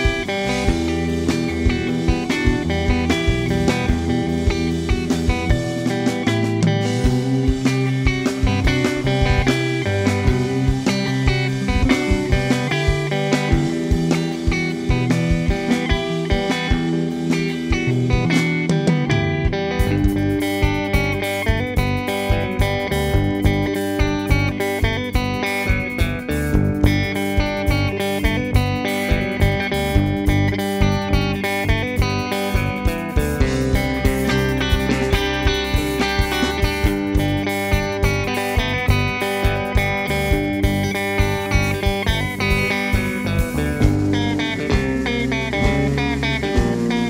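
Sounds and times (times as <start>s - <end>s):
drum kit: 0.0s - 47.0s
electric bass: 0.0s - 47.0s
electric guitar: 0.0s - 47.0s.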